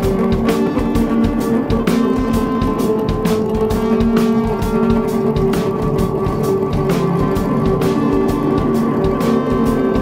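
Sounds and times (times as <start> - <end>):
drum kit steady beat: 0.0 - 10.0
sustained held tones: 0.0 - 10.0.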